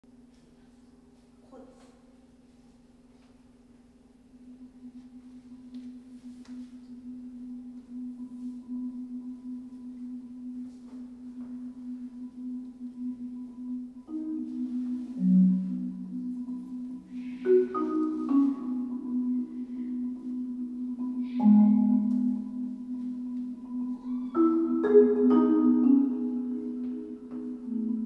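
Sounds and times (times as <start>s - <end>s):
marimba soft roll: 4.3s - 28.0s.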